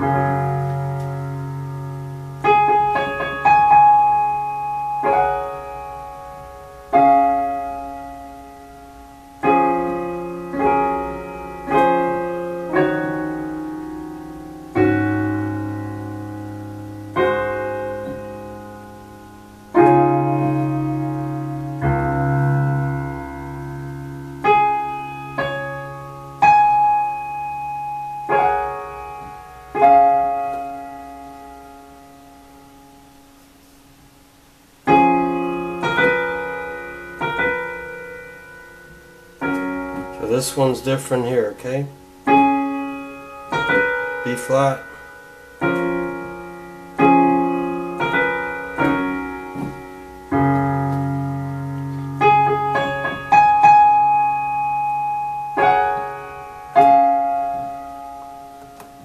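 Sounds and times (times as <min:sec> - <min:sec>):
slow piano ballad: 0:00.0 - 0:59.0.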